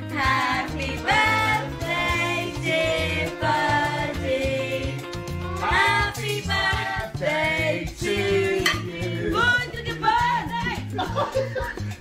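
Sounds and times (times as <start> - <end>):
repeating bass line: 0.0 - 11.0.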